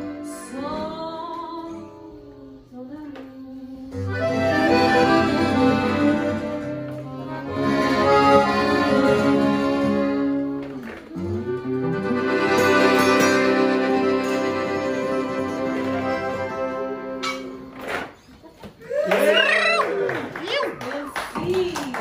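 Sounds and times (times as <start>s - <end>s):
accordion playing held chords: 0.0s - 1.0s, 4.0s - 17.8s
acoustic band music: 0.0s - 19.6s.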